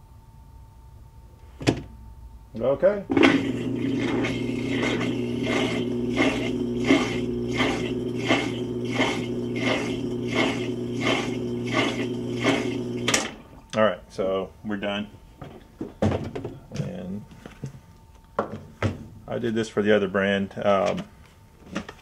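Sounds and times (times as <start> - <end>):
washing machine pulsing hum: 3.1 - 13.7.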